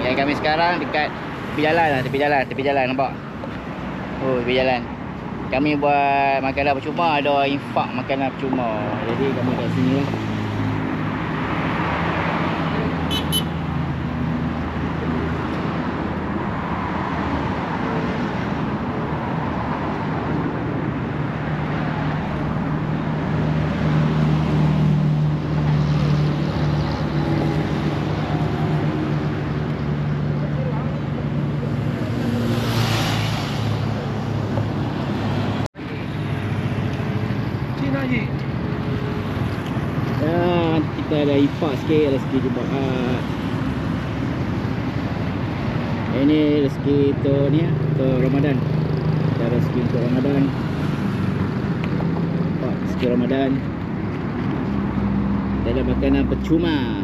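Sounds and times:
cars passing: 0:00.0 - 0:57.0
hum of engines and tyres: 0:00.0 - 0:57.0
motorcycle passing: 0:19.3 - 0:47.1.

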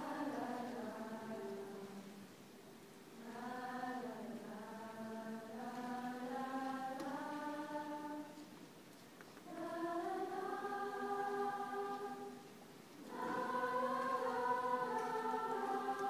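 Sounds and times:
choir singing held chords: 0:00.0 - 0:08.5, 0:09.4 - 0:16.0.

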